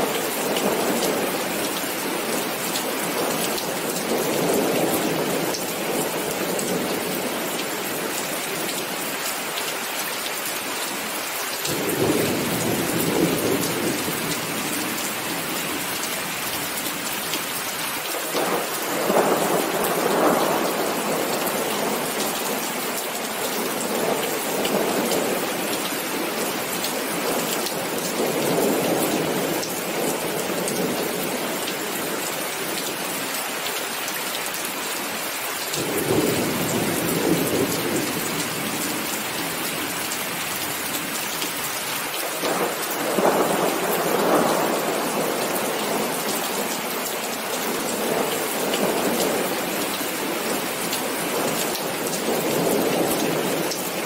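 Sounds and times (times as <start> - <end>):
heavy rain: 0.0 - 54.0.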